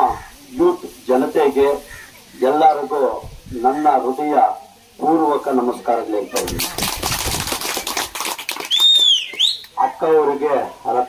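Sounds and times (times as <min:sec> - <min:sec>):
crowd clapping: 0:06.4 - 0:09.8.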